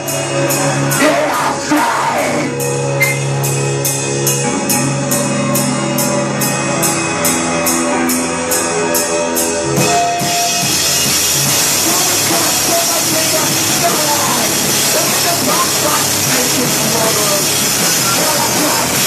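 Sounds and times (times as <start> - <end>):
loud band with distorted guitars: 0.0 - 19.0
ringing guitar chords: 2.4 - 19.0.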